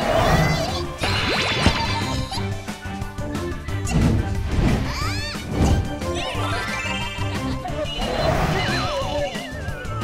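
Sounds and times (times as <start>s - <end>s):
cartoon background music: 0.0s - 10.0s.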